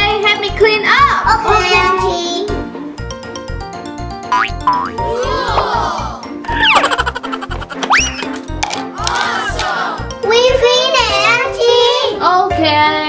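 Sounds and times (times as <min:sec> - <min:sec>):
upbeat children's music: 0:00.0 - 0:13.0
cartoon boings and swoops: 0:04.3 - 0:08.4.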